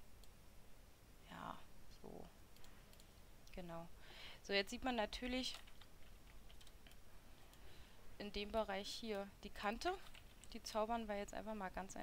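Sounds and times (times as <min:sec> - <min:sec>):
computer mouse clicks: 0:02.5 - 0:03.6, 0:05.2 - 0:07.7, 0:10.0 - 0:10.6.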